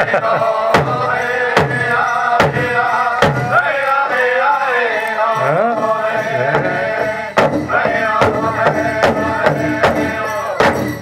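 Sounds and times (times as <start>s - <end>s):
group singing: 0.0s - 11.0s
steady drumbeat: 0.7s - 3.8s, 5.5s - 11.0s.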